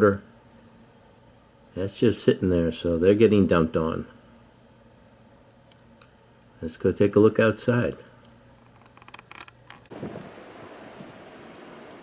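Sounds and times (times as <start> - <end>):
blizzard wind hiss: 9.9 - 12.0.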